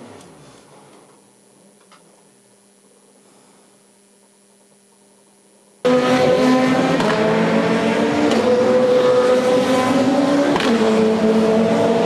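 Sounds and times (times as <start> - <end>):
race car engine at high revs: 5.8 - 12.0.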